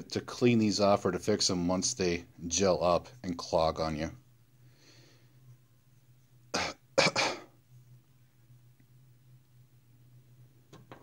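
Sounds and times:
steady low hum: 0.0 - 11.0
man coughing: 6.6 - 7.5.

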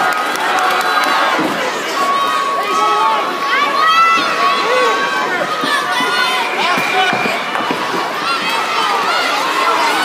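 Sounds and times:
arena crowd cheering and shouting: 0.0 - 10.0.

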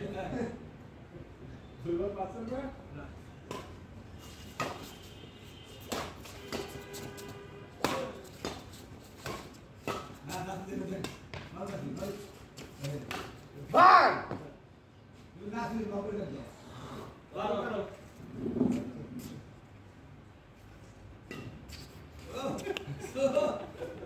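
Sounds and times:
rackets hitting shuttlecock: 3.5 - 3.8, 4.5 - 4.9, 5.8 - 11.5
loud shout: 13.7 - 14.4.

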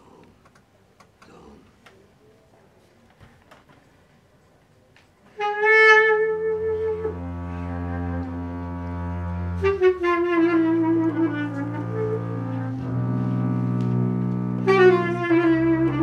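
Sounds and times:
bass clarinet held note: 5.4 - 16.0
double bass bowed note: 5.4 - 16.0.

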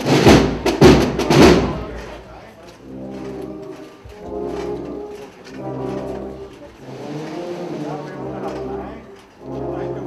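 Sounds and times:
brass band playing a march: 0.0 - 10.0.

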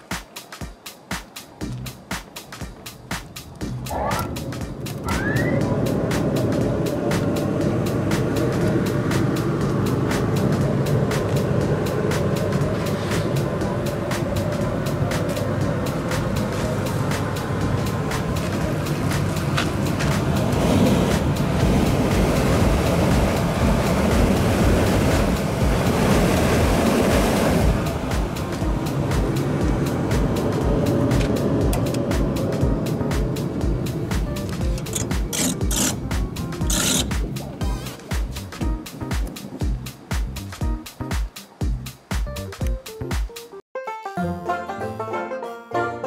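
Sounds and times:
hum of air at intake: 3.0 - 40.5
blower motor whine: 3.7 - 37.9.

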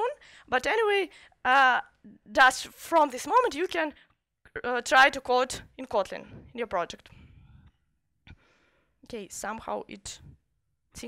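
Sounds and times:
soft breath into microphone: 6.2 - 9.0.

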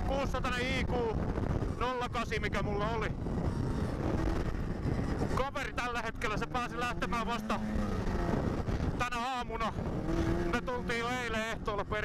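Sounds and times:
snowmobile engine running: 0.0 - 12.0.

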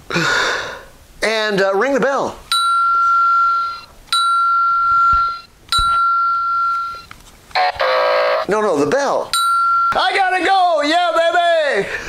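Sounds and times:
bell ringing: 2.5 - 8.5, 9.3 - 10.3.

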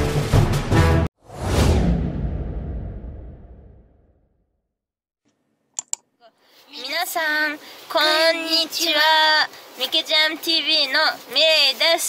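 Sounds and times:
low rumble: 1.2 - 4.4
whoosh: 1.2 - 4.5.

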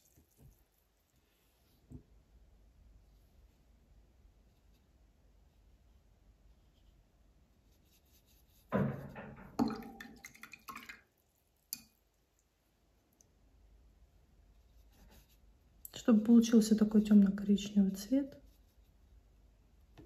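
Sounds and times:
brush knocking against glass: 8.6 - 10.3.

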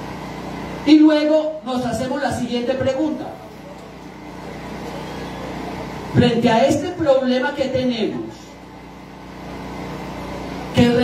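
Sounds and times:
vehicle engine hum: 2.1 - 7.3.

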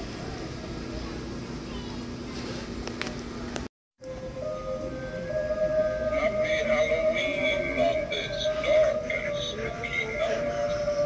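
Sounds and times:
spooky music with wavering notes: 4.0 - 11.0.

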